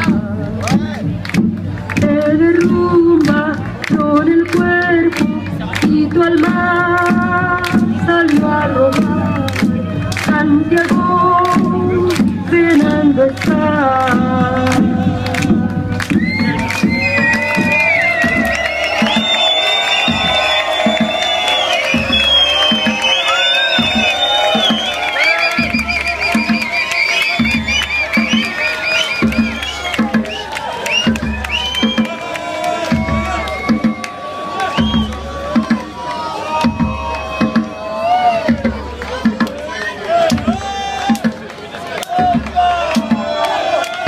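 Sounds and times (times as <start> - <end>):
deep steady beat: 0.0 - 41.5
crowd cheering: 0.0 - 44.0
loud dance music: 13.3 - 36.0.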